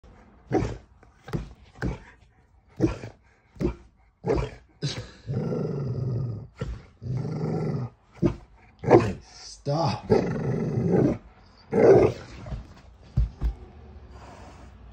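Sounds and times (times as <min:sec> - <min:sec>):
dog growling: 0:00.1 - 0:14.7
dog barking: 0:08.2 - 0:09.2.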